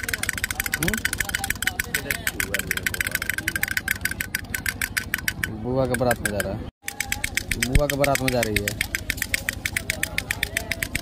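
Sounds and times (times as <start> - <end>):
toy drum rapid taps: 0.0 - 11.0.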